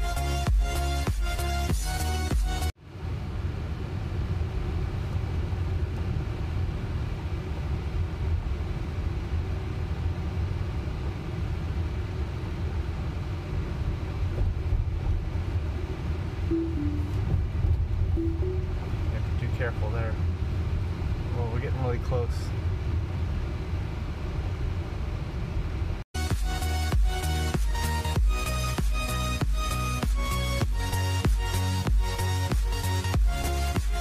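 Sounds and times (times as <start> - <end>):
road and tyre noise in car: 0.0 - 34.0
faint brief tones: 16.5 - 17.4.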